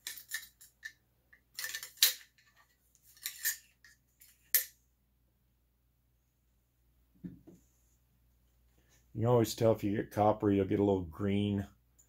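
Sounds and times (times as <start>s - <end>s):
metallic clicks of rifle handling: 0.0s - 4.8s.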